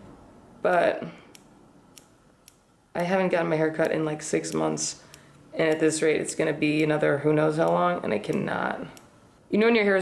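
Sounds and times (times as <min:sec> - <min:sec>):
scissors snipping hair: 0:00.7 - 0:09.1.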